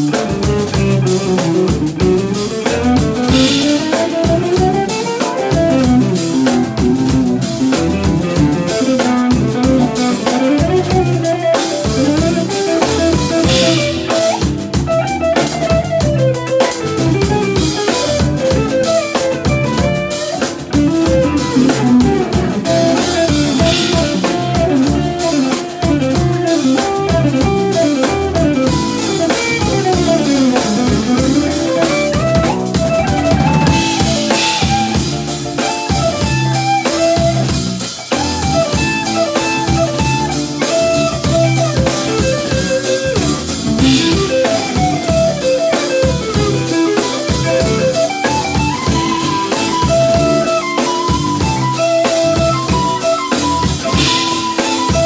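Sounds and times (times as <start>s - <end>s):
drum kit groove: 0.0s - 55.0s
sliding guitar lines: 0.0s - 55.0s.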